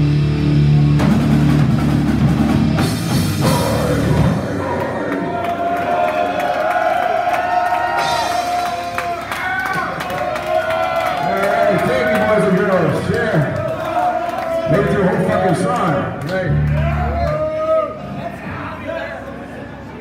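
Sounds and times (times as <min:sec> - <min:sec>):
live metal band playing: 0:00.0 - 0:05.8, 0:07.9 - 0:09.1
crowd shouting and cheering: 0:00.0 - 0:20.0.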